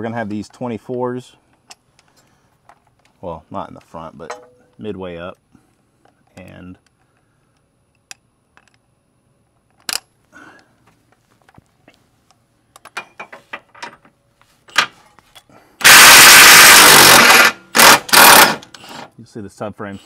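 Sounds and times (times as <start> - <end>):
impact wrench hammering: 15.8 - 18.8.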